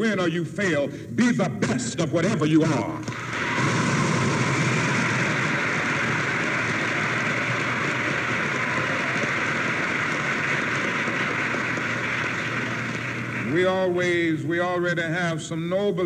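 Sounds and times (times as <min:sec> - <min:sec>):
audience applauding: 0:03.0 - 0:14.3.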